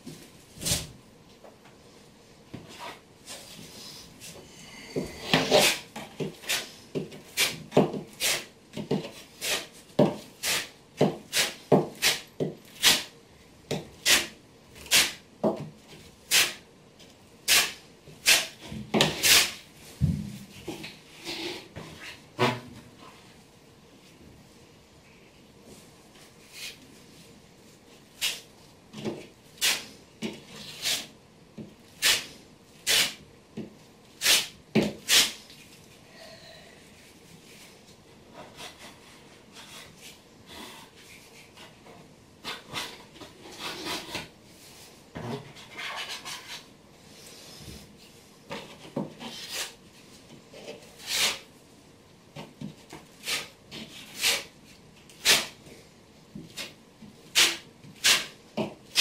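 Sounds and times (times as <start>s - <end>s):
trowel scraping membrane: 5.2s - 6.7s, 17.5s - 19.6s, 50.7s - 51.5s, 53.2s - 54.5s, 57.3s - 59.0s.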